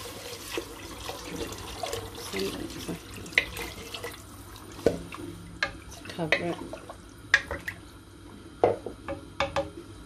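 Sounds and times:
wooden spoon knocking on metal pot: 8.6 - 9.8.

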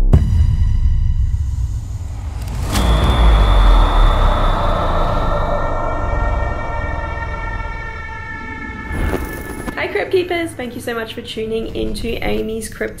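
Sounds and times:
impact with deep boom: 0.0 - 9.8
high ringing tones: 0.2 - 10.8
sustained droning wash: 2.1 - 11.8.

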